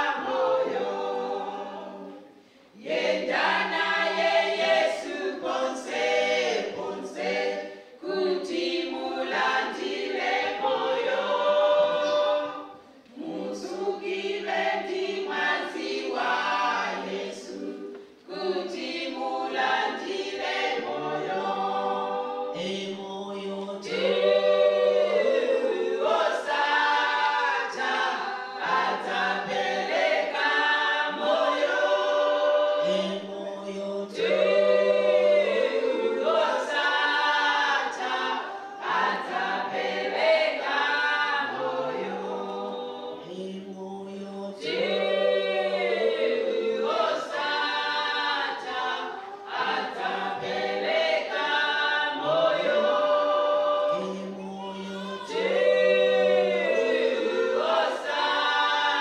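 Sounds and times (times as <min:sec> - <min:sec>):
church choir singing: 0:00.0 - 0:59.0.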